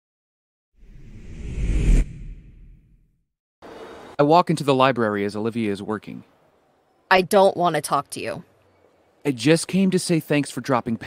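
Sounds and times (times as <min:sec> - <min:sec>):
low rumble: 0:00.8 - 0:03.0
whoosh transition effect: 0:00.8 - 0:03.0.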